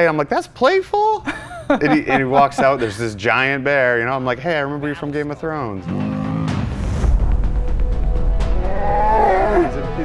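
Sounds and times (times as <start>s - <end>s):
background music: 1.8s - 10.0s
bear moaning and rumbling: 5.8s - 6.8s, 8.5s - 10.0s.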